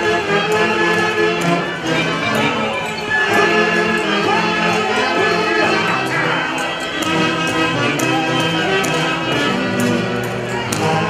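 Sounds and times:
live band playing dance music: 1.1 - 11.0.

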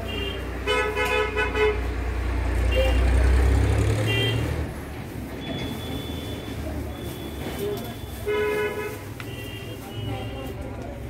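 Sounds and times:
loud horn toot: 3.9 - 4.6
murmur of voices: 6.0 - 11.0.

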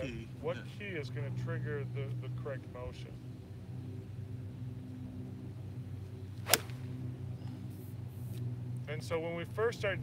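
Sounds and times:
low hum: 0.0 - 10.0
golf club striking ball: 6.4 - 7.0.

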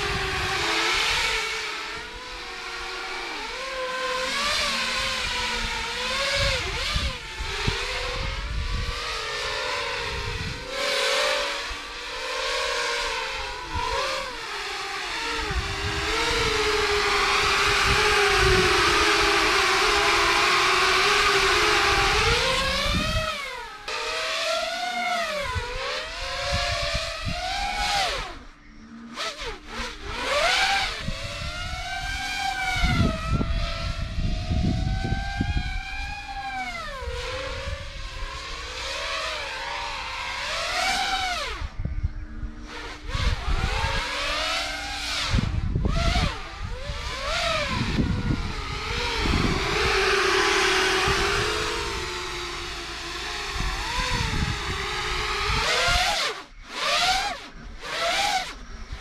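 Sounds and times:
quadcopter motors whining: 0.0 - 59.0.

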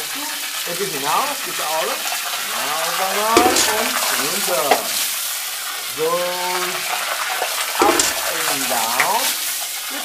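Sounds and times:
fountain water spraying: 0.0 - 6.8, 7.4 - 10.0
sharp knock: 3.4 - 4.0, 7.8 - 8.3.

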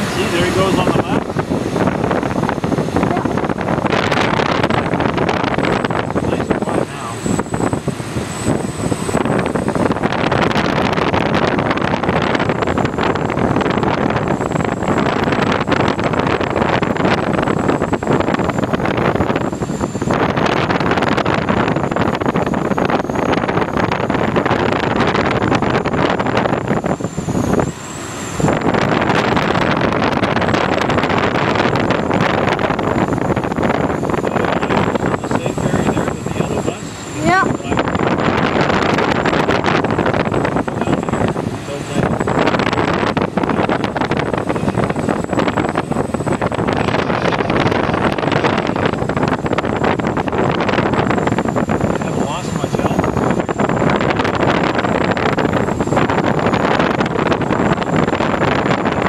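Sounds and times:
air rushing past glider: 0.0 - 59.0.

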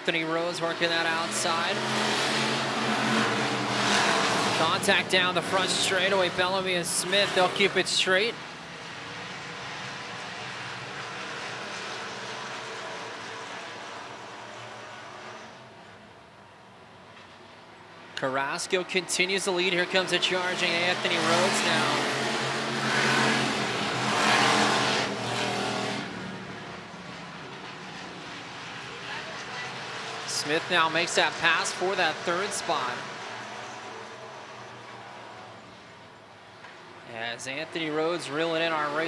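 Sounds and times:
race car engines droning: 0.0 - 39.0.

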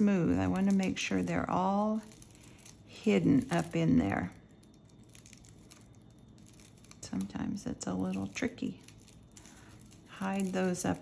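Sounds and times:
dry pine needles rustling: 0.0 - 11.0.

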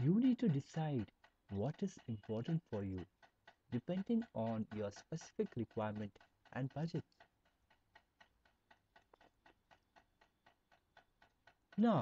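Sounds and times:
faint even ticking: 0.0 - 12.0.

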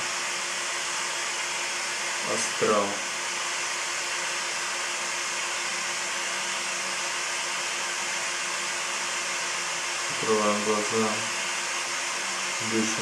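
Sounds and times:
steady hiss: 0.0 - 13.0.

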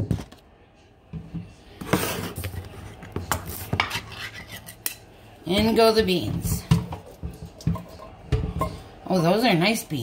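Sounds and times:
kitchen items clattering in sink: 5.5 - 9.3.

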